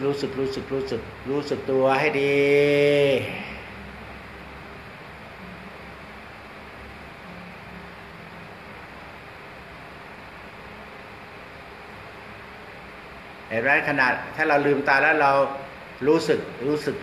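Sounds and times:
air conditioner running: 0:00.0 - 0:17.0
room tone hiss and hum: 0:00.0 - 0:17.0.

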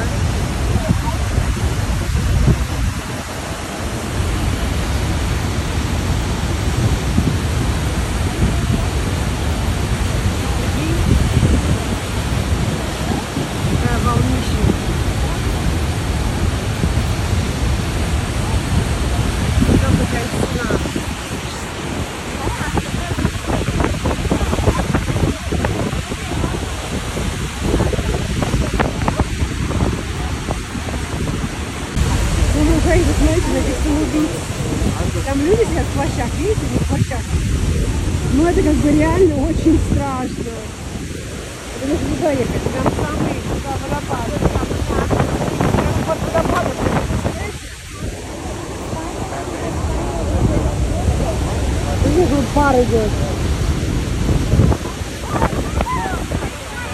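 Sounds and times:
waterfall rushing: 0:00.0 - 0:56.9
wind buffeting microphone: 0:00.0 - 0:56.9.

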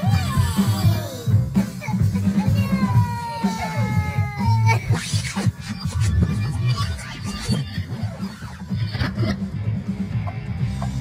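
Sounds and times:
background music with steady beat: 0:00.0 - 0:11.0
whining cartoon voice squeaks: 0:02.5 - 0:08.8.

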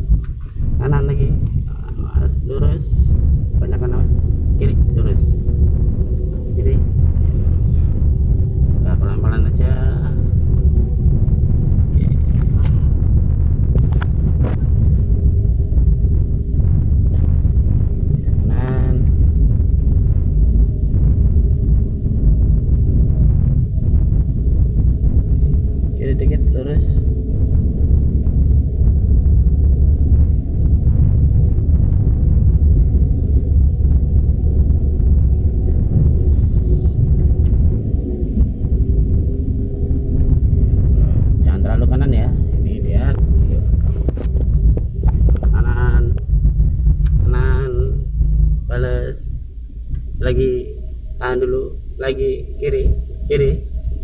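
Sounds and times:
car engine and road noise: 0:00.0 - 0:54.0.

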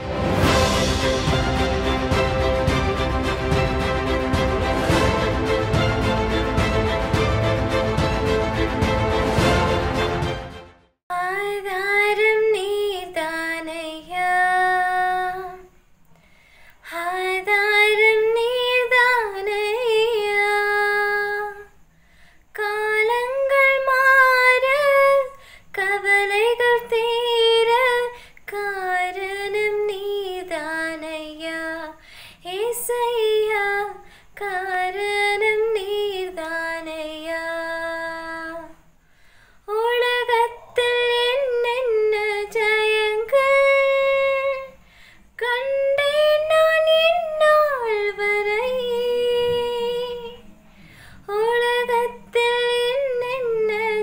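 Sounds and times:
woman singing unaccompanied: 0:11.1 - 0:15.8, 0:16.8 - 0:21.8, 0:22.5 - 0:38.9, 0:39.6 - 0:50.6, 0:51.2 - 0:54.0.

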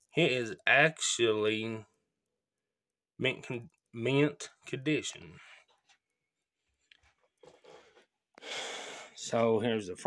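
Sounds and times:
person breathing: 0:07.5 - 0:09.2
sharp intake of breath: 0:08.4 - 0:09.2.

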